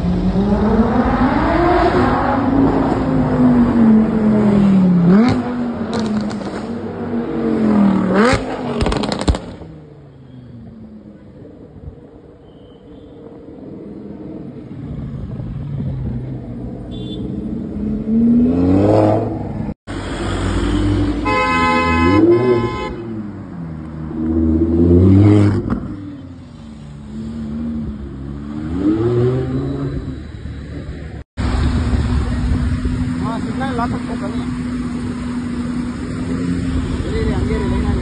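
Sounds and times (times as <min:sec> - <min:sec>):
car engines revving: 0:00.0 - 0:12.4, 0:13.3 - 0:38.0
car horn: 0:16.9 - 0:17.5, 0:20.4 - 0:23.3.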